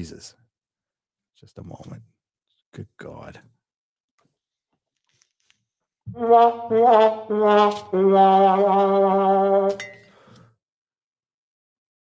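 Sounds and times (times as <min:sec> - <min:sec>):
sad trombone: 0:06.1 - 0:09.8.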